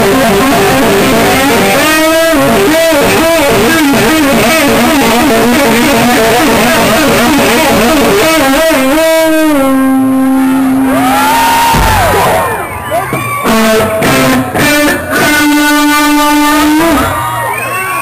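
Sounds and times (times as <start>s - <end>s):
electric guitar solo: 0.0s - 18.0s.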